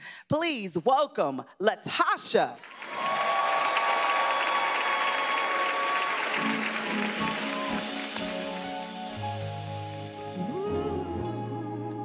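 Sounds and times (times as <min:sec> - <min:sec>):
audience applauding: 0:02.6 - 0:09.2.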